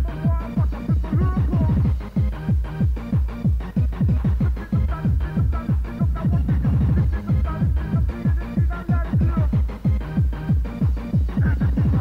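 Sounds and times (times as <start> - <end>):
fast electronic dance music: 0.0 - 12.0.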